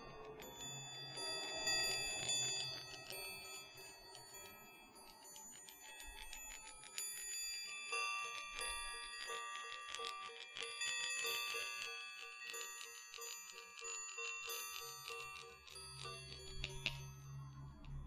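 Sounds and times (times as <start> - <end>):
light clicks of balls touching: 0.0 - 18.0
metal balls ringing: 0.0 - 18.0.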